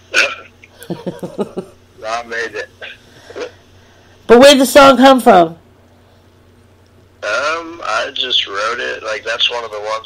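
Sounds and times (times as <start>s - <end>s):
person laughing: 0.1s - 1.8s.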